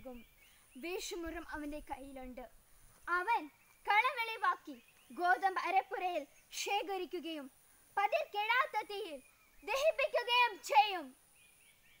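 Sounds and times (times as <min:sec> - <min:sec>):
bird chirping: 0:00.0 - 0:07.0, 0:08.2 - 0:12.0
girl speaking: 0:00.0 - 0:11.2.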